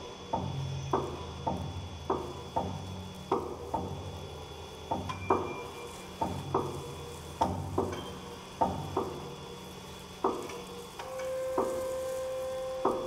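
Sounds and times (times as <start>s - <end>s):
struck piano and percussion notes: 0.2s - 13.0s.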